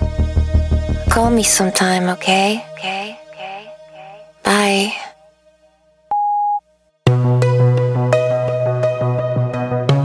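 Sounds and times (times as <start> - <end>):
spoken message: 1.1 - 5.2
electronic telephone beep: 6.1 - 6.6.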